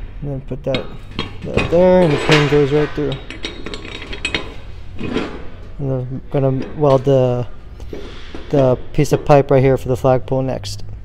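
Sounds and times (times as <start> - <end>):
metal clinks and scrapes: 0.7 - 8.7.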